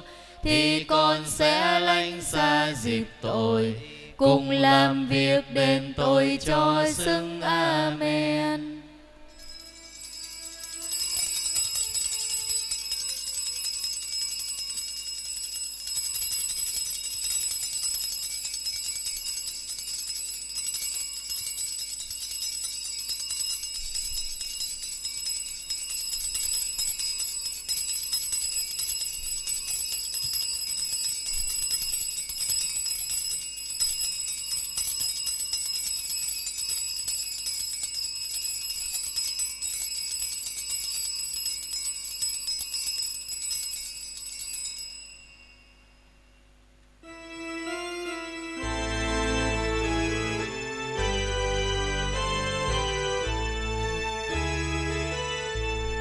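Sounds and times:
small bells jingling: 9.3s - 46.2s, 47.0s - 56.0s.

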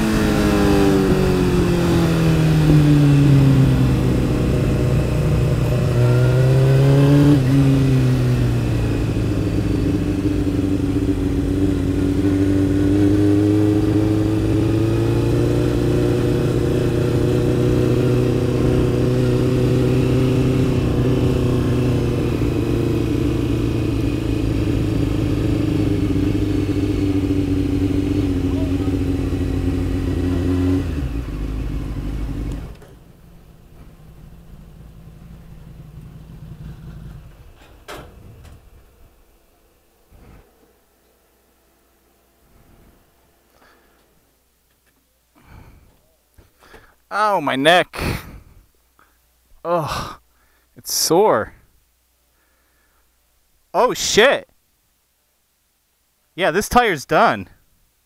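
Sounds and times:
motorcycle engine: 0.0s - 47.3s.

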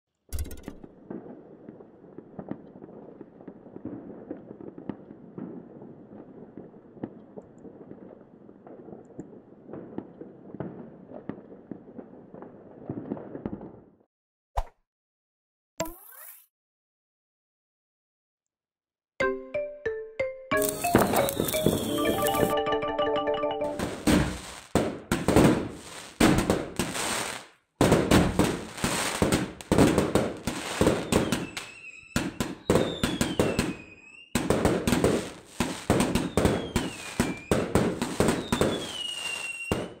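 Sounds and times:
firecrackers popping: 0.8s - 13.9s, 20.6s - 22.5s, 23.7s - 40.0s
falling firework whistles: 20.7s - 22.5s, 23.8s - 27.5s, 30.4s - 40.0s.

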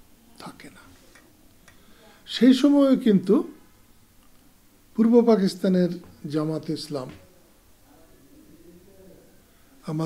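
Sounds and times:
faint click: 1.1s - 1.8s.

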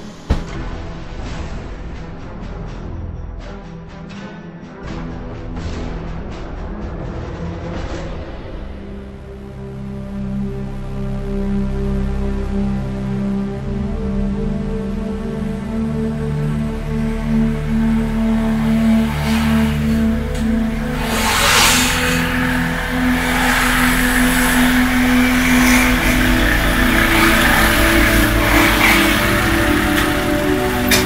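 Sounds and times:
background music with held notes: 0.0s - 31.0s
small motorcycle engines: 15.1s - 31.0s.

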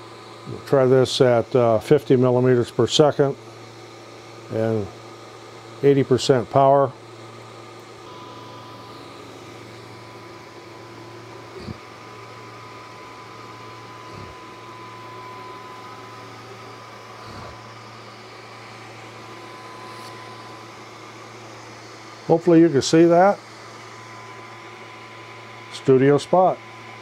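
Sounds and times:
fan hum: 0.0s - 27.0s
thin high whine: 8.0s - 26.6s.

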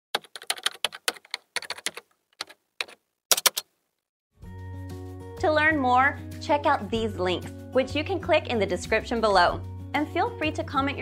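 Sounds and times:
keyboard key clicks: 0.2s - 3.7s.

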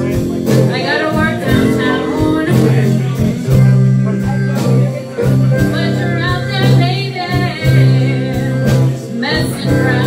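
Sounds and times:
live blues band playing: 0.0s - 10.0s.

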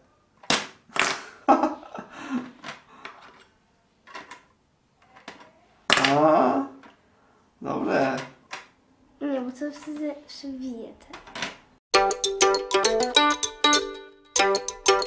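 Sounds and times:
person making wordless sound: 5.5s - 6.9s.

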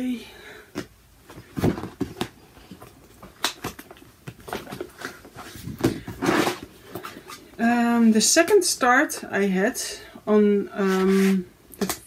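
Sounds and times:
fabric and paper rustling: 1.3s - 7.5s.

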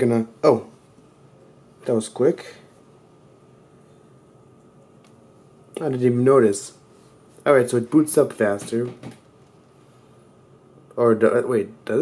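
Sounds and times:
man speaking: 0.0s - 0.8s, 1.8s - 2.8s, 5.7s - 9.1s, 10.9s - 12.0s
faint steady hum: 0.0s - 12.0s.

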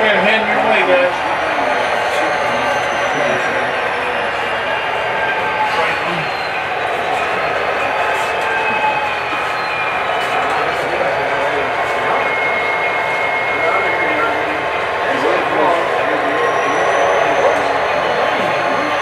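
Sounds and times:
indistinct chatter: 0.0s - 19.0s.

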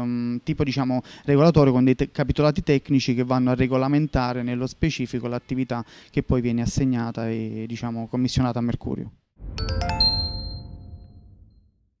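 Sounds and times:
low rumble: 9.4s - 12.0s
bright bell-like chord: 9.5s - 11.5s.

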